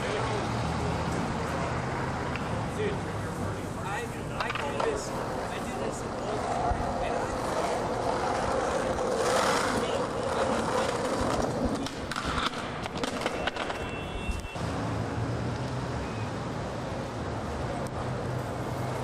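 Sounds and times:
skateboard wheels rolling on asphalt: 0:00.0 - 0:19.0
skateboard clacking on pavement: 0:04.3 - 0:14.4.

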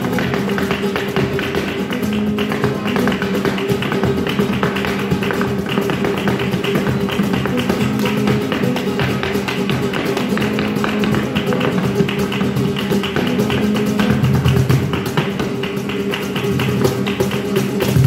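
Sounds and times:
acoustic guitar: 0:00.0 - 0:18.0
cajon drumming: 0:00.0 - 0:18.0
hand clapping: 0:00.0 - 0:18.0
shoes tapping on dance board: 0:00.0 - 0:18.0.

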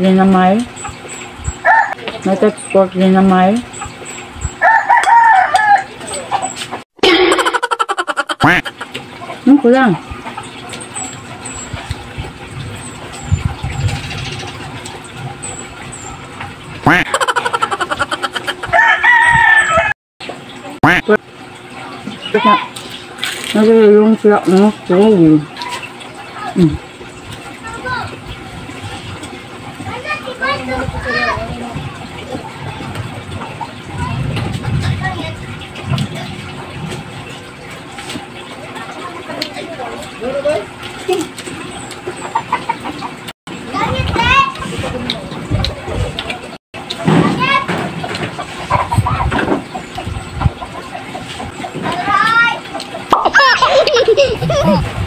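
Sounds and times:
steady background noise: 0:00.0 - 0:55.0
crowing call: 0:01.6 - 0:02.0, 0:04.5 - 0:06.6.

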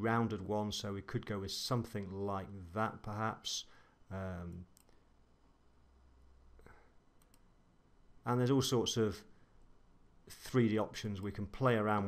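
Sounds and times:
low room hum: 0:00.0 - 0:12.0
computer mouse clicks: 0:04.5 - 0:05.0, 0:07.2 - 0:07.5.

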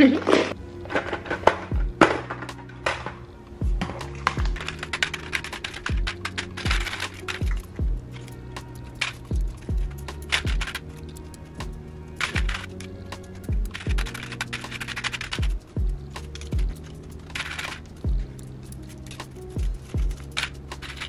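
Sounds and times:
beat music with kick drums: 0:01.7 - 0:02.2, 0:03.6 - 0:04.9, 0:05.9 - 0:10.9, 0:11.6 - 0:14.3, 0:15.2 - 0:17.0, 0:18.0 - 0:20.8
metal hair clips clinking: 0:04.0 - 0:21.0.

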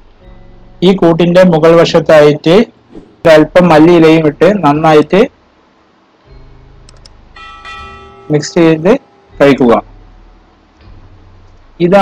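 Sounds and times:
quiet background music: 0:00.0 - 0:12.0
bell chime ringing: 0:06.3 - 0:10.6.

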